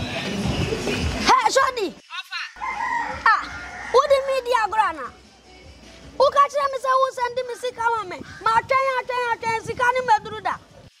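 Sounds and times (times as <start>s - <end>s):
rooster crowing: 2.5s - 4.6s.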